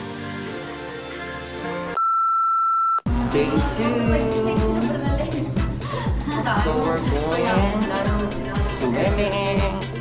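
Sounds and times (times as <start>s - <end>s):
test-tone beep: 2.0s - 3.1s.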